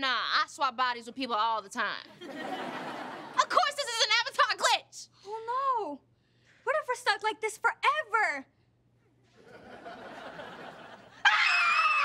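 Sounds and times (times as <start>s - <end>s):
audience laughter: 2.2s - 3.4s, 9.4s - 11.2s
high-pitched scream: 11.2s - 12.0s.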